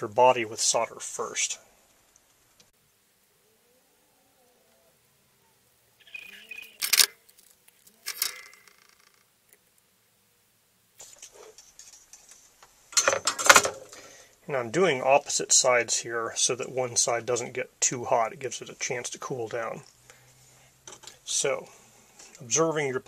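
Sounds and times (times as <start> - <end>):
metallic clinks and knocks: 6.8 - 9.2.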